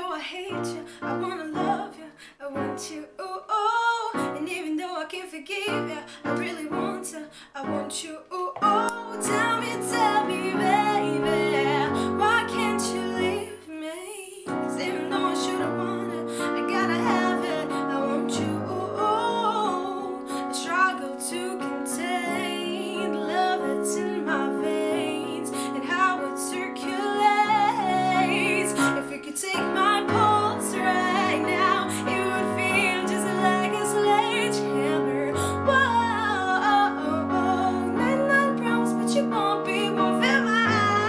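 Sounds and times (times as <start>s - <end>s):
keyboard piano chords: 0.0s - 3.1s, 3.8s - 4.7s, 5.6s - 13.7s, 14.5s - 41.0s
woman singing pop melody: 0.0s - 41.0s.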